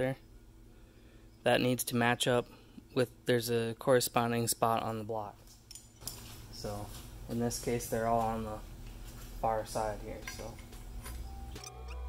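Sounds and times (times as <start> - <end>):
background music: 11.2 - 12.0.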